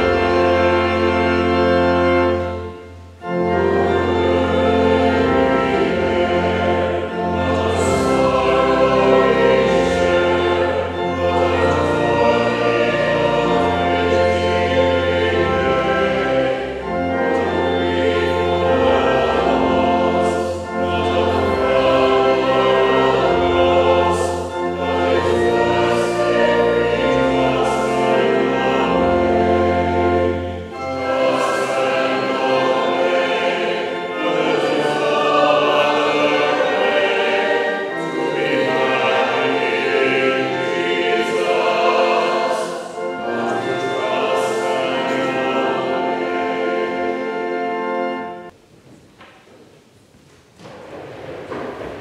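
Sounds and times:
organ bass notes: 0.0s - 48.5s
congregation singing a hymn: 0.0s - 48.6s.

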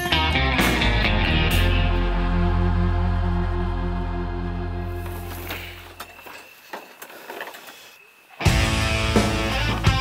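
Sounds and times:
loud guitar rock music: 0.0s - 4.6s, 8.4s - 10.0s
soft sustained music: 0.0s - 5.8s.

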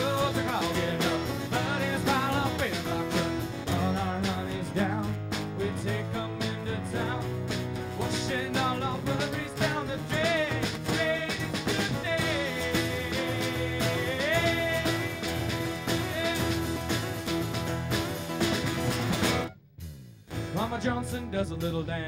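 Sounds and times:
country-rock band playing: 0.0s - 19.6s, 20.3s - 22.0s.

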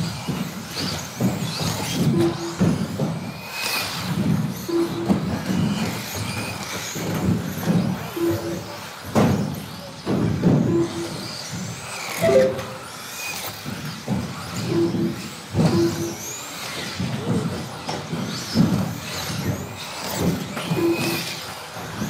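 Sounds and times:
rc buggy motors whining: 0.0s - 12.2s, 12.8s - 22.0s.

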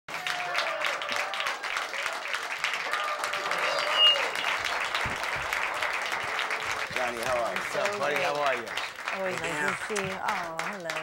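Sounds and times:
audience applause and cheering: 0.1s - 11.0s
short high whistle: 3.5s - 4.8s.

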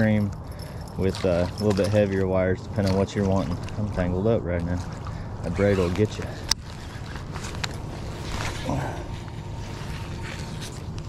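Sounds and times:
steady low hum: 0.0s - 11.0s
gloved hands rustling: 2.7s - 11.0s.

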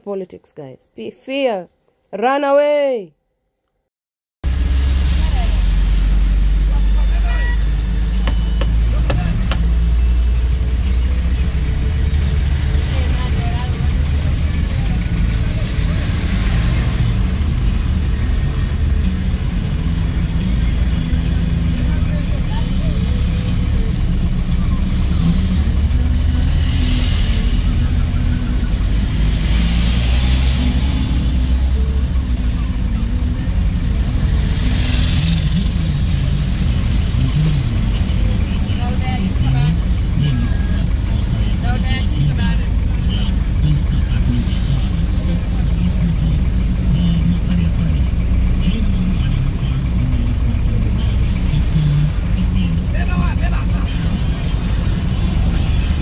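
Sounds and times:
engine and road rumble: 4.4s - 56.0s.

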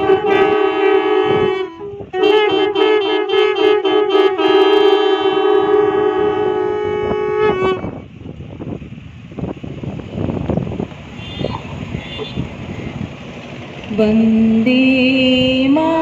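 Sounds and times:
conch shells blown: 0.0s - 8.0s
outdoor noise: 0.0s - 16.0s
voices: 10.9s - 16.0s.

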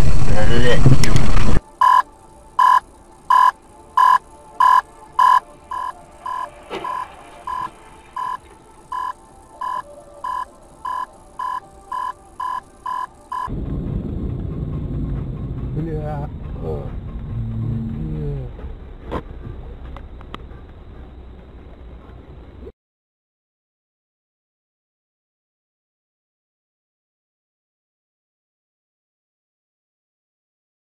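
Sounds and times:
vehicle rumble: 0.0s - 22.7s
electronic beeps: 1.6s - 13.5s.

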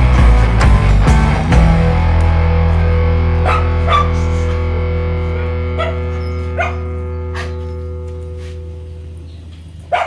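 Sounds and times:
guitar music: 0.0s - 9.9s
dog barking: 3.4s - 4.5s, 5.7s - 8.6s.

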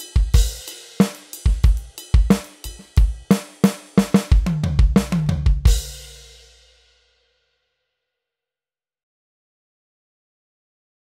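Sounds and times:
electronic drum kit beat: 0.0s - 6.4s
tom fill: 0.0s - 6.6s.

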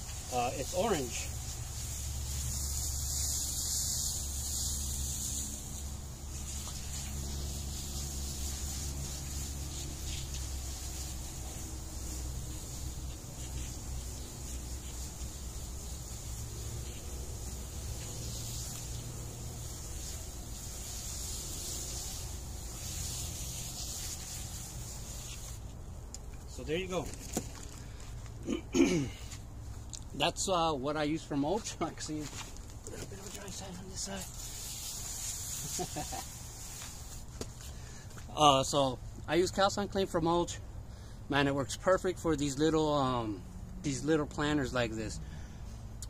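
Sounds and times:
hose spraying water: 0.0s - 27.7s, 31.2s - 39.7s.

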